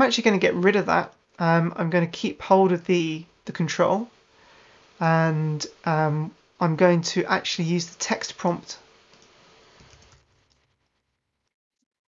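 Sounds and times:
faint keyboard typing: 0:09.1 - 0:11.6.

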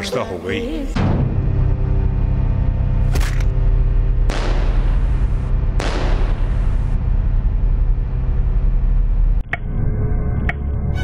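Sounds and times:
deep bass rumble: 0:00.8 - 0:11.0
heavy impact hit: 0:01.0 - 0:08.4.

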